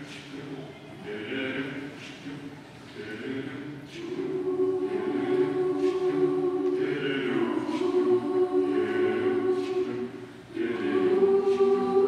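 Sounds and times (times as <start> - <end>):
mixed choir singing chords: 0.0 - 12.0.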